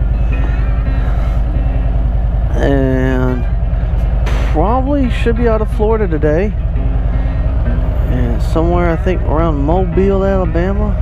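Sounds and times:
motorcycle engine at low revs: 0.0s - 11.0s.

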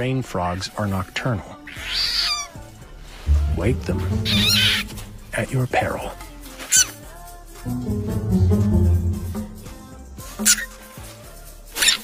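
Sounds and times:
frog squeaking: 1.7s - 2.5s, 4.2s - 4.9s.

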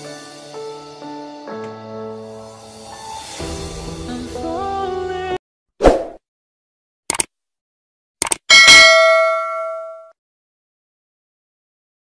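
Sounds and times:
background music: 0.0s - 5.4s
quick double clicks: 7.1s - 7.3s, 8.2s - 8.5s
bright bell ding: 8.5s - 10.1s.

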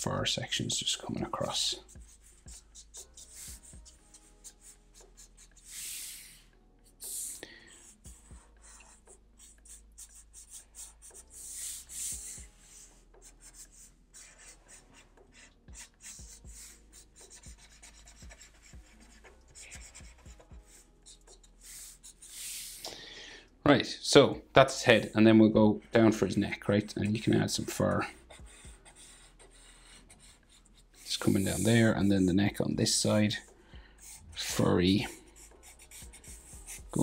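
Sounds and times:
marker scratching on paper: 0.5s - 22.9s, 26.1s - 37.0s
pen rubbing on paper: 1.4s - 6.4s, 7.0s - 22.8s, 27.2s - 37.0s.

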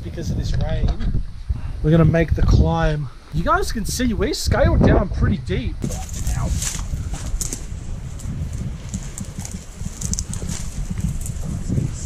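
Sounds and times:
wind rumble on microphone: 0.0s - 12.0s
footsteps through wet grass: 5.8s - 12.0s.

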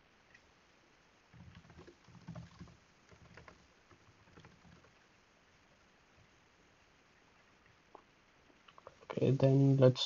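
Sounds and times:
computer keyboard typing: 1.4s - 5.0s.

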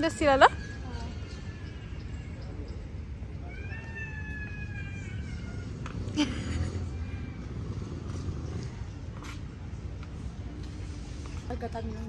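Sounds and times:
low outdoor rumble: 0.7s - 12.0s
cat meowing: 3.4s - 5.8s.

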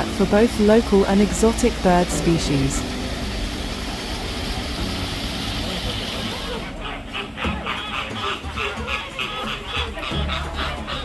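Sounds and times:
rushing outdoor noise with rumble: 0.0s - 8.5s
background music with even beat: 0.0s - 11.0s.

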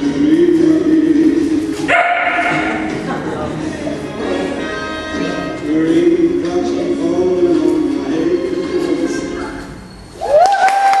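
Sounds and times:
song playing in background: 0.0s - 9.9s
dog barking: 1.9s - 2.9s.

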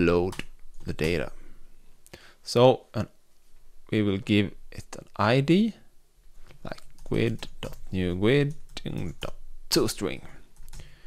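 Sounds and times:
person speaking: 0.0s - 1.6s, 3.9s - 5.9s, 6.5s - 10.6s.

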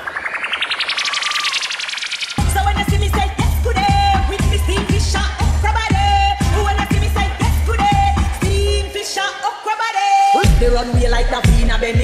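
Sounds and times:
synthesized rising sweep: 0.0s - 3.2s.

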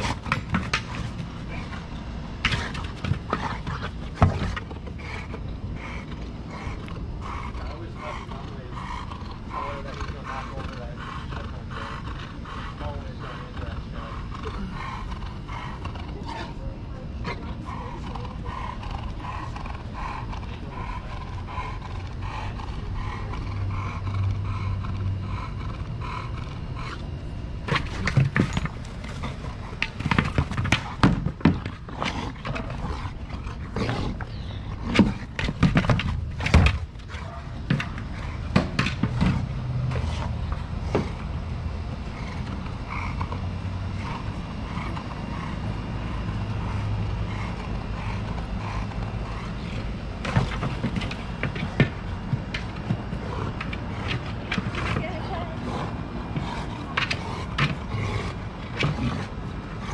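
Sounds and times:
dog breathing heavily: 0.0s - 59.9s.

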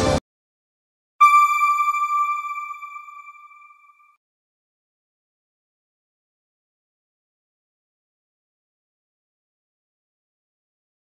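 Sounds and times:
high electronic chime: 1.2s - 4.1s.

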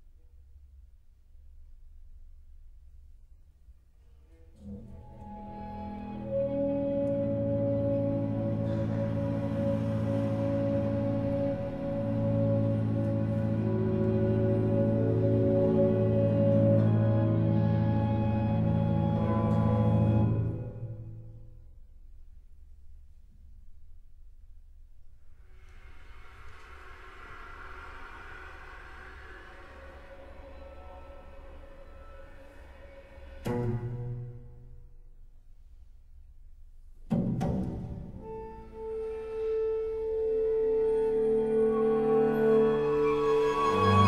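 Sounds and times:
chamber ensemble sustained tones: 4.6s - 21.5s, 25.4s - 34.6s, 38.2s - 44.0s
low rumble: 21.6s - 35.4s.

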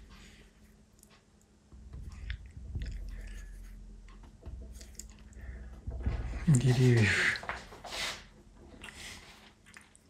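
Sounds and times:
low rumble: 1.7s - 7.5s
brush scraping paint on canvas: 7.8s - 8.3s.

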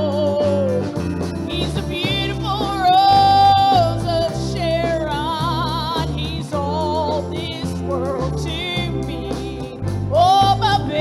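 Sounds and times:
keyboard accompaniment: 0.0s - 11.0s
low bass notes: 0.0s - 11.0s
woman singing gospel: 0.0s - 11.0s.

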